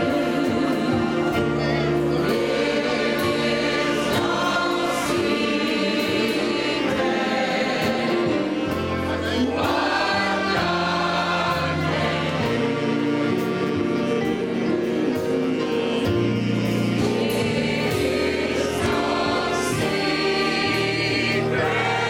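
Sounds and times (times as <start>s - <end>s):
congregation singing a hymn: 0.0s - 22.0s.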